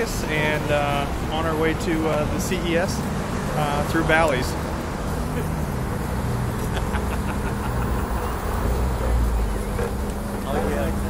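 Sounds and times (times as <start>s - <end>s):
car engines droning: 0.0s - 11.0s
passing vehicles rumbling: 0.0s - 11.0s.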